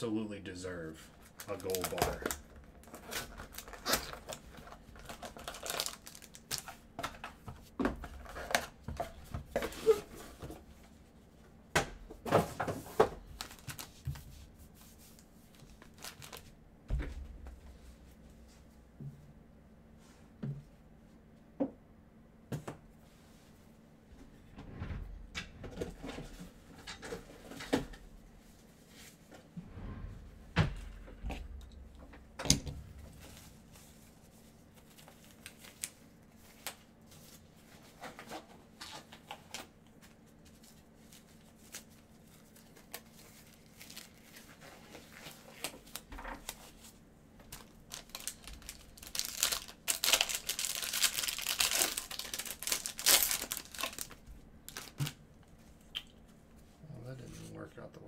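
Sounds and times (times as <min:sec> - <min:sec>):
foil wrapper crinkling and tearing: 0:01.2 - 0:06.8, 0:13.3 - 0:14.0, 0:15.6 - 0:16.5, 0:34.7 - 0:36.8, 0:40.6 - 0:46.8, 0:47.5 - 0:55.2.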